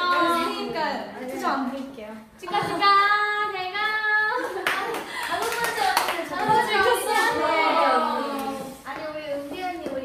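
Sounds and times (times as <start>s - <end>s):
women's voices: 0.0s - 10.0s.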